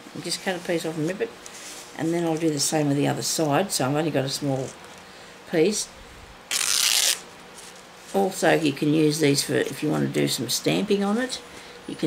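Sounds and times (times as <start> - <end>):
fabric tearing: 6.5 - 7.3.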